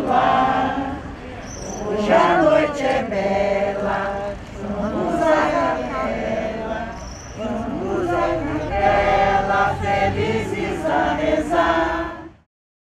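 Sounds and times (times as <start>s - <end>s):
women's choir singing a carol: 0.0s - 12.5s.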